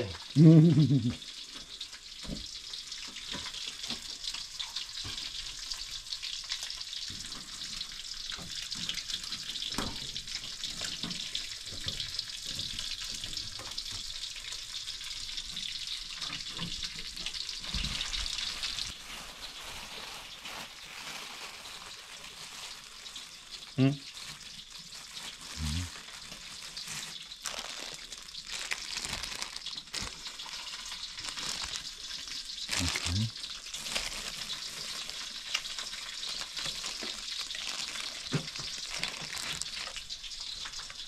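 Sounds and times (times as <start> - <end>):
food sizzling in hot oil: 0.0 - 41.0.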